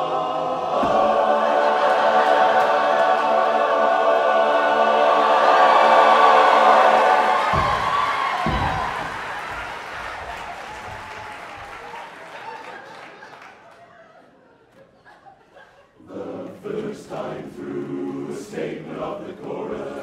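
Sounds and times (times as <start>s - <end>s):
men's barbershop chorus singing: 0.0s - 7.7s, 16.0s - 20.0s
audience applause: 6.1s - 14.0s
low thumps: 6.8s - 9.6s.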